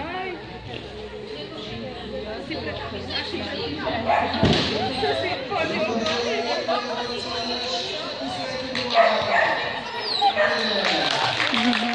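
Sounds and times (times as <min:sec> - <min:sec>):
dog barking: 0:04.1 - 0:04.4, 0:09.0 - 0:10.8.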